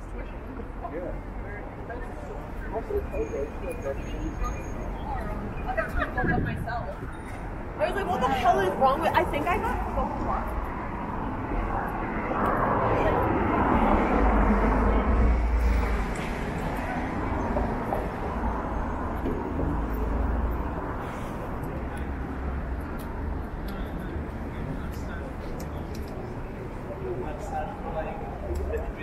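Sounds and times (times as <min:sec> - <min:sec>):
low traffic rumble: 0:00.0 - 0:29.0
passers-by talking: 0:00.0 - 0:29.0
passing engine: 0:08.1 - 0:24.0.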